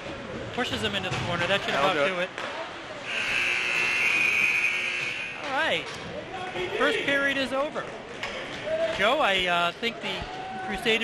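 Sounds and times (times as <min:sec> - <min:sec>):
ice rink buzzer: 0:03.1 - 0:05.6.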